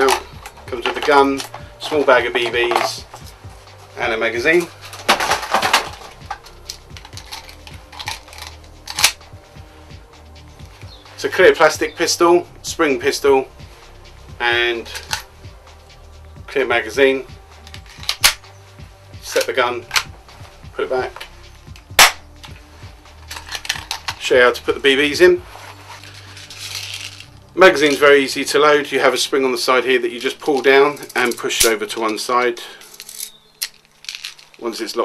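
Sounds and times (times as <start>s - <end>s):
plastic pistol clicks and rattles: 4.9s - 9.2s, 17.6s - 18.4s, 19.4s - 20.1s, 23.2s - 24.2s, 32.9s - 34.6s
bb pistol shot snap: 22.0s - 22.3s.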